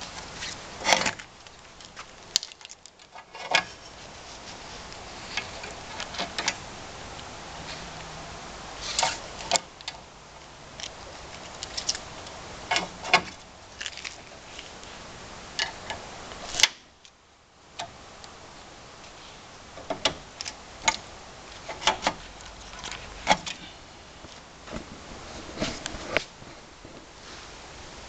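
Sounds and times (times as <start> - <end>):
steady background noise: 0.0 - 28.0
clicks and knocks of handled parts: 0.1 - 4.0, 8.9 - 14.8, 19.8 - 24.9.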